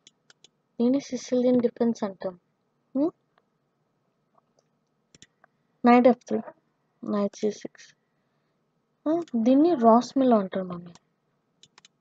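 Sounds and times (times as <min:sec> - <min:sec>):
person speaking: 0:00.8 - 0:02.4, 0:05.8 - 0:07.9, 0:09.1 - 0:11.0.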